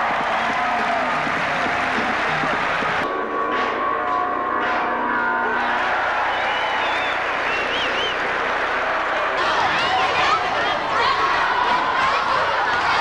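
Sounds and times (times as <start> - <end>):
arena crowd cheering: 0.0 - 3.1, 5.2 - 13.0
music with held notes: 0.0 - 8.6.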